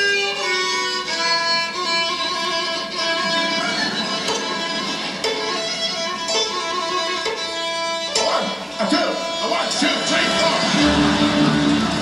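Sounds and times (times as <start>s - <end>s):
orchestra holding notes: 0.0s - 12.0s
plucked violin: 0.0s - 12.0s.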